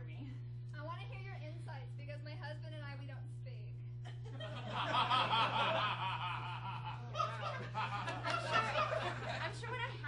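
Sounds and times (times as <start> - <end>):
steady low hum: 0.0 - 10.0
audience laughing: 4.2 - 10.0.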